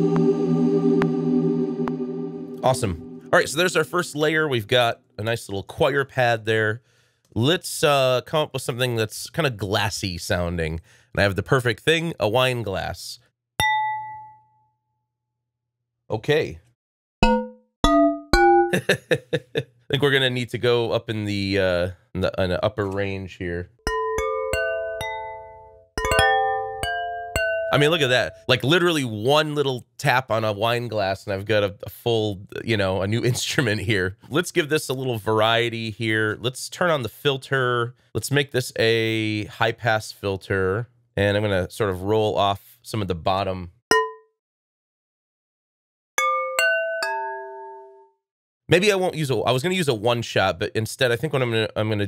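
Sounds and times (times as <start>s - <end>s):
sampled glass tap notes: 13.6s - 14.5s, 17.2s - 18.8s, 43.9s - 44.2s.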